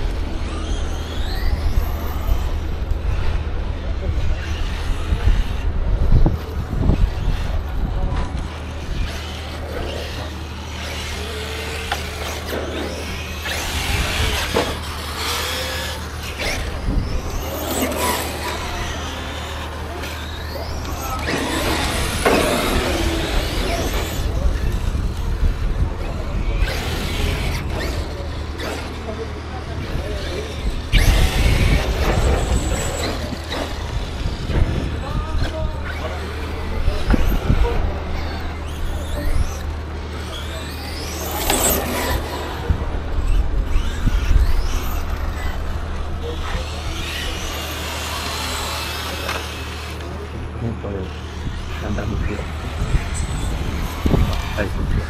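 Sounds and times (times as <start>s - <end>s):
radio-controlled car motors whining: 0.0s - 55.0s.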